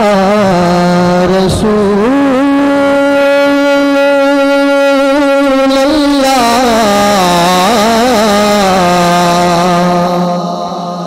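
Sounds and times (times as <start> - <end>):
man singing a long held note: 0.0 - 11.0.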